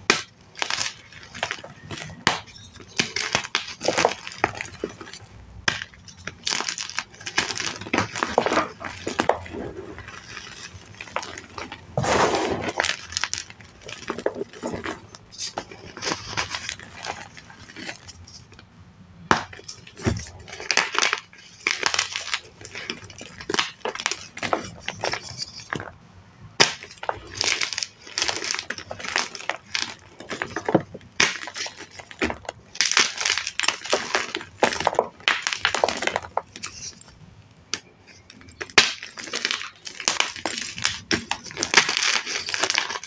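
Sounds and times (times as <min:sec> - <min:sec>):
crumbling grit: 0:00.0 - 0:18.6, 0:26.6 - 0:37.1
chalk blocks crunching and snapping: 0:00.0 - 0:26.0, 0:26.6 - 0:43.0.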